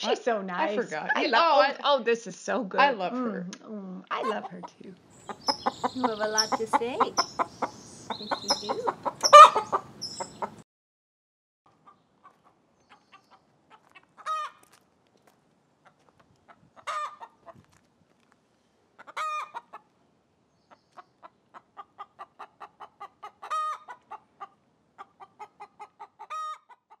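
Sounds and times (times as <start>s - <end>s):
hen drawn-out call: 4.1s - 10.6s, 14.2s - 14.6s, 16.8s - 17.4s, 19.0s - 19.8s, 21.8s - 24.5s
hens clucking: 4.1s - 10.6s, 11.7s - 14.7s, 15.8s - 17.6s, 19.0s - 19.9s, 20.7s - 27.0s.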